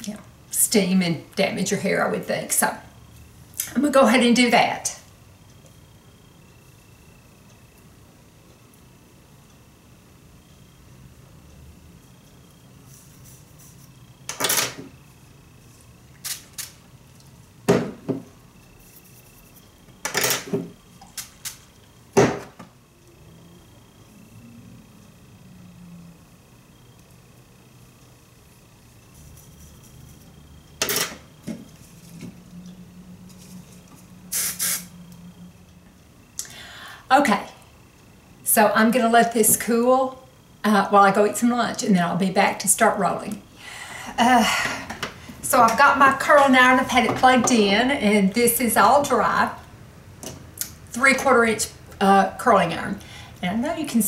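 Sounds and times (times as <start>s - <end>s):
hair spray hissing bursts: 34.3s - 35.0s.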